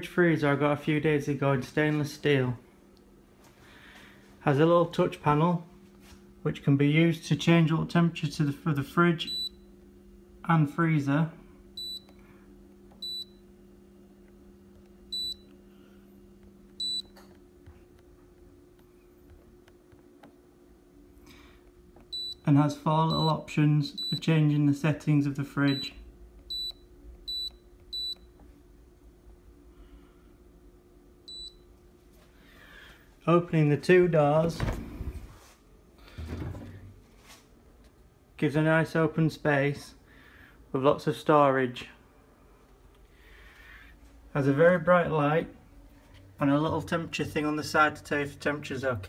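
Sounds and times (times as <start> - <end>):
low steady hum: 0.0 - 49.0.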